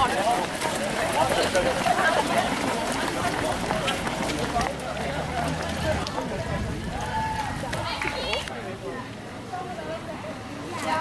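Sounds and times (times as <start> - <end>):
footsteps of runners on pavement: 0.0 - 11.0
voices: 0.0 - 11.0.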